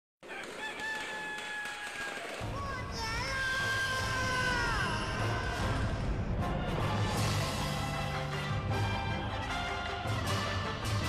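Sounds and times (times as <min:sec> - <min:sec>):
rooster crowing: 0:00.2 - 0:02.4.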